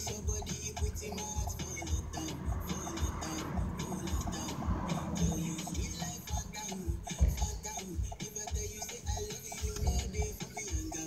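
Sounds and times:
pop music on car radio: 0.0 - 11.0.

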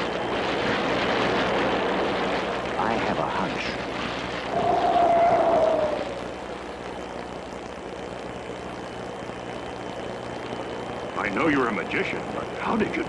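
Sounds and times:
rushing rumbling noise: 0.0 - 10.2
low hum: 0.0 - 13.0.

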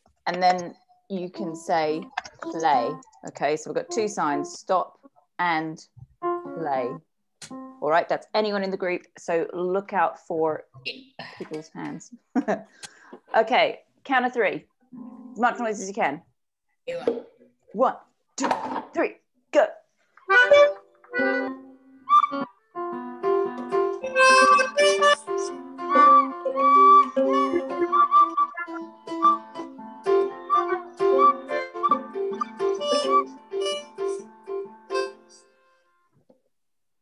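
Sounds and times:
accordion: 3.8 - 4.6, 20.2 - 35.9
melodica: 3.8 - 4.6, 20.3 - 35.9
recorder: 20.2 - 35.4.

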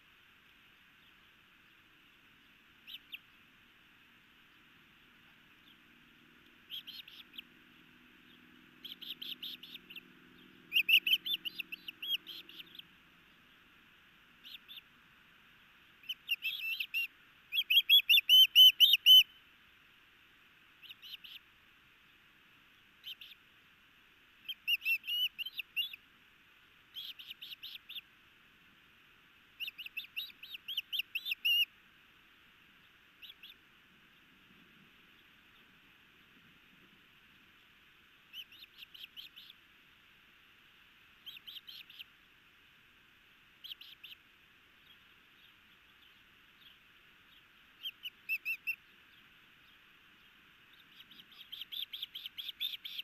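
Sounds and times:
faint low hum: 0.0 - 53.0
osprey chirping: 2.8 - 3.4, 6.6 - 13.7, 14.4 - 14.9, 16.0 - 19.4, 20.8 - 21.4, 23.0 - 23.4, 24.4 - 26.0, 26.9 - 28.1, 29.6 - 31.7, 32.8 - 34.3, 38.3 - 39.6, 41.2 - 42.1, 43.6 - 44.2, 44.8 - 53.0.

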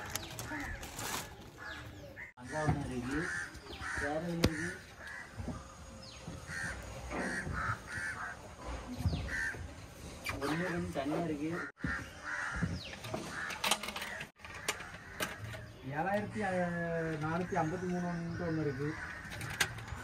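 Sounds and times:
crows cawing: 0.3 - 9.7, 11.4 - 20.0.

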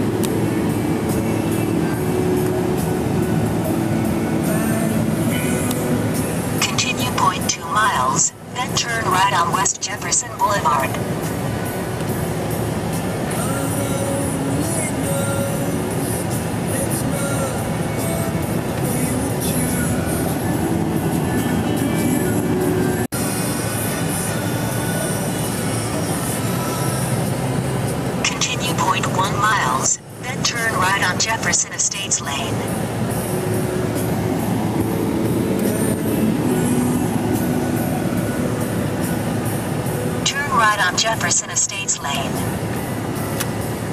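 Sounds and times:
car road and engine noise: 0.0 - 43.9
car radio music and talk: 6.6 - 11.0, 28.2 - 32.8, 40.2 - 42.5.

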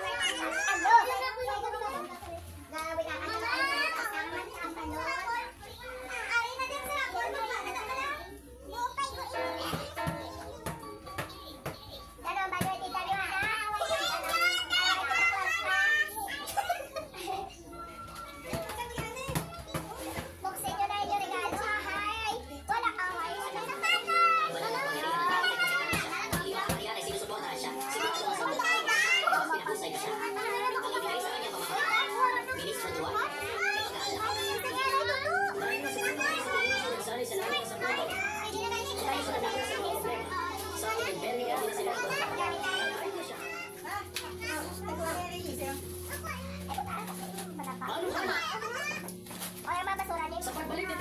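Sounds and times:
children's voices: 0.0 - 51.0
people talking at once: 0.0 - 51.0.

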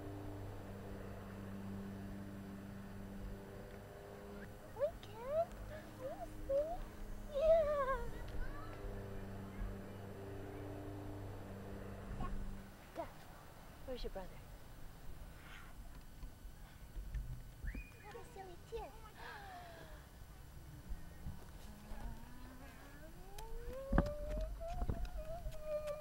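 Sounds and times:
toddler making high-pitched vocal sounds: 4.8 - 8.6, 23.0 - 26.0
young child squealing and babbling: 6.0 - 8.2.

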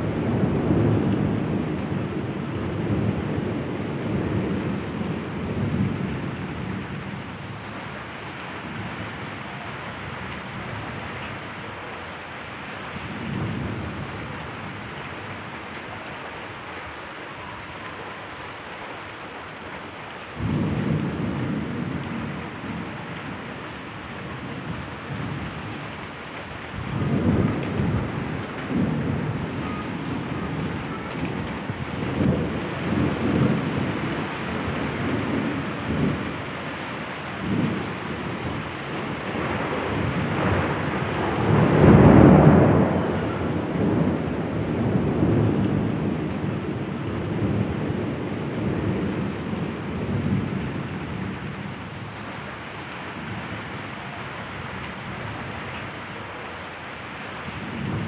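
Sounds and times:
steady rain: 0.0 - 58.0
thunder rolling: 26.8 - 36.4, 37.4 - 51.6.

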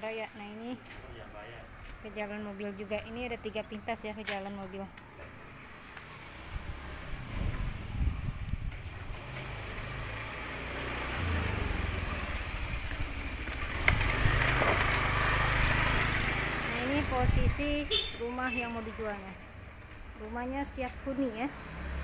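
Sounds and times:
vehicle engine rumbling: 0.0 - 22.0.

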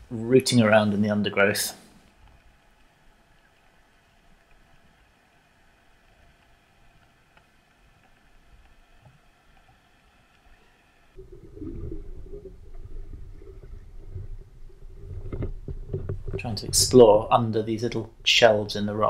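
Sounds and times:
faint steady hum: 0.0 - 19.0
low rumbling water noise: 0.0 - 19.0.

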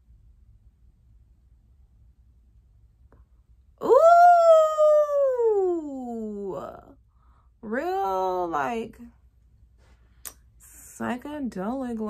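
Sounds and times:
woman breathing: 7.0 - 7.6.

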